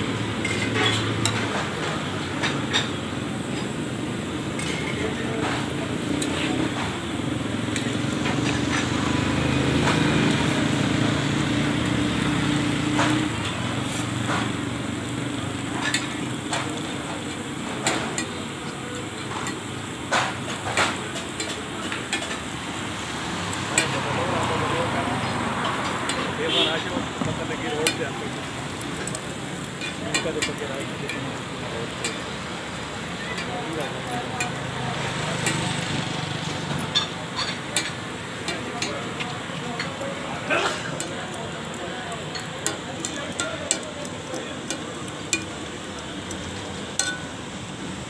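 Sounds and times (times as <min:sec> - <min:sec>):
metal spatula scraping griddle: 0:00.4 - 0:01.8.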